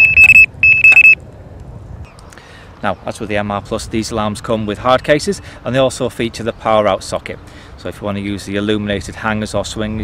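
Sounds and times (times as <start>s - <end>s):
high-pitched alarm beep: 0.0s - 1.2s.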